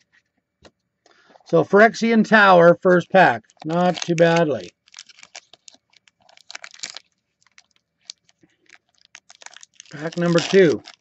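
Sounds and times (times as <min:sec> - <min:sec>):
foil wrapper crinkling: 0:02.9 - 0:11.0.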